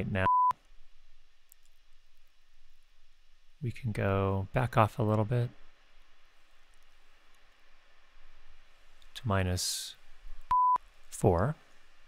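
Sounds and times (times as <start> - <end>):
faint fan hiss: 0.0 - 12.0
faint clicks: 1.4 - 2.4.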